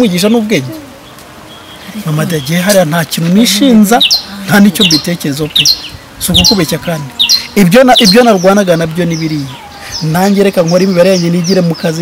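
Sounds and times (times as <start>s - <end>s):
man speaking: 0.0s - 0.8s, 2.0s - 12.0s
bird chirping: 0.0s - 12.0s.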